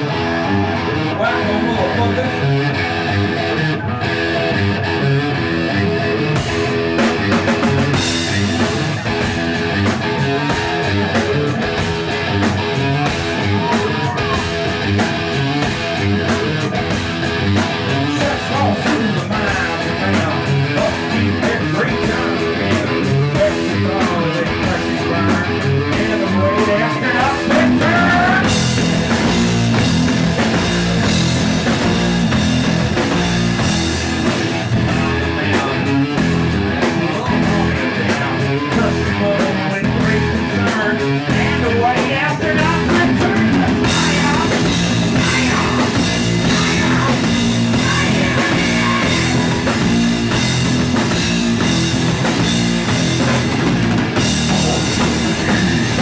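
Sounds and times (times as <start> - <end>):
bass guitar: 0.0 - 56.0
electric guitar: 0.0 - 56.0
drum kit and cymbals: 6.2 - 56.0.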